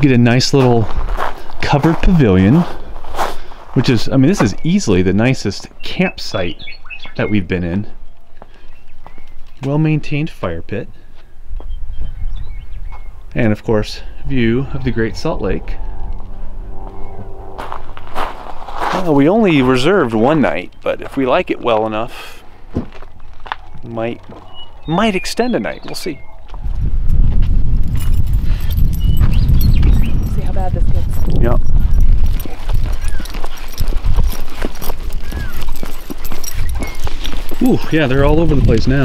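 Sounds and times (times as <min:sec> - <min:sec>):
wind buffeting microphone: 0:00.0 - 0:04.9, 0:11.4 - 0:21.4, 0:22.6 - 0:39.0
footsteps on gravel: 0:00.6 - 0:04.5, 0:17.6 - 0:19.2, 0:22.7 - 0:24.8, 0:32.2 - 0:39.0
low rumble: 0:13.1 - 0:20.4.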